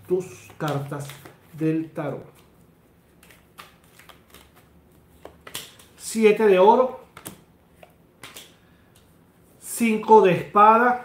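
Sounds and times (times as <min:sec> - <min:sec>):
cards clicking and rustling: 0:00.2 - 0:06.0, 0:07.0 - 0:09.1.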